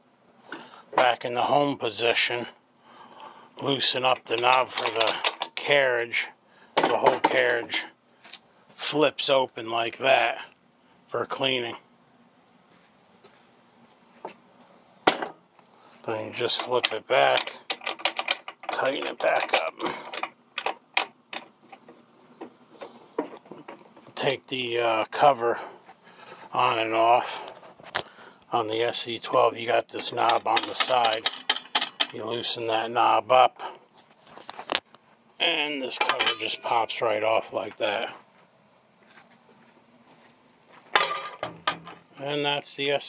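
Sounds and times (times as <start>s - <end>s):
faint handling noise: 12.5s - 24.4s, 33.6s - 42.2s.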